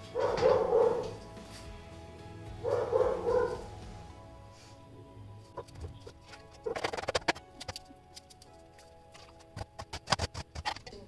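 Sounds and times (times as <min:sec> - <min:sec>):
dog barking: 0:00.0 - 0:01.2, 0:02.6 - 0:03.7
background music: 0:00.0 - 0:11.0.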